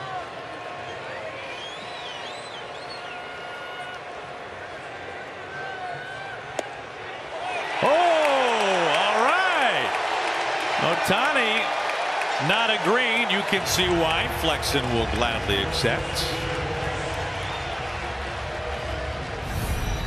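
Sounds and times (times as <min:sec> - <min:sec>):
crowd cheering: 0:00.0 - 0:20.0
loud swooping shout: 0:07.7 - 0:09.9.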